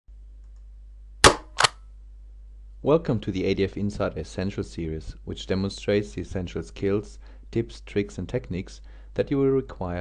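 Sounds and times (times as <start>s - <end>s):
low steady hum: 0.1s - 10.0s
sharp bang sound effects: 1.2s - 1.7s.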